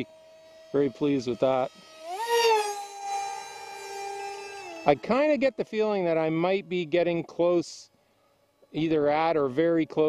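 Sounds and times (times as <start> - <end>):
electric motor propeller whine: 0.0 - 10.0.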